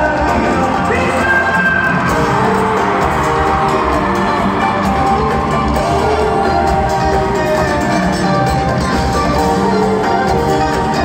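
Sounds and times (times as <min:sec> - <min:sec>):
live band with male singer: 0:00.0 - 0:11.0
crowd cheering and whooping: 0:00.9 - 0:11.0.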